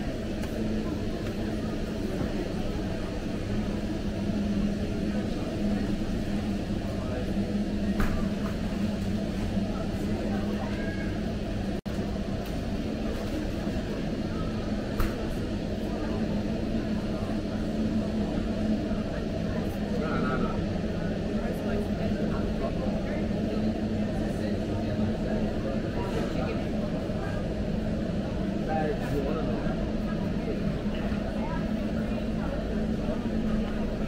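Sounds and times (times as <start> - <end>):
indistinct shoppers' chatter: 0.0 - 34.0
low machinery hum: 0.0 - 34.0.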